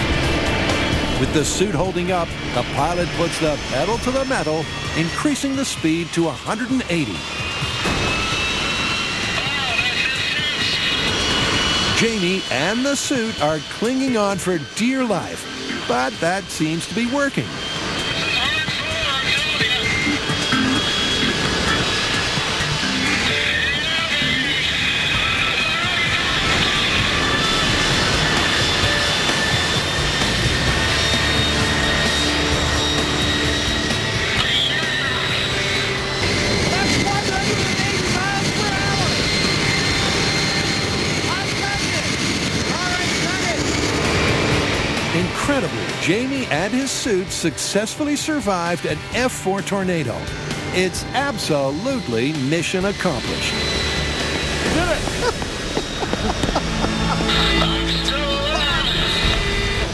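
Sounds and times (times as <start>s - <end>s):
jet engine roaring with whine: 0.0s - 59.9s.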